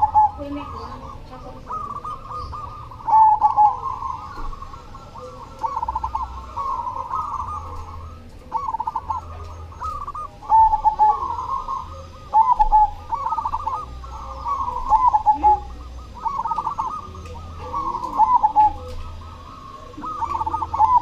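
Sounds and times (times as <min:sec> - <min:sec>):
dove cooing: 0:00.0 - 0:21.0.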